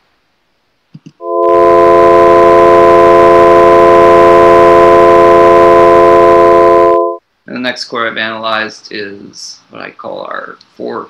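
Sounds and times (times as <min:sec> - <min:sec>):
sustained electronic chord: 0:01.2 - 0:07.2.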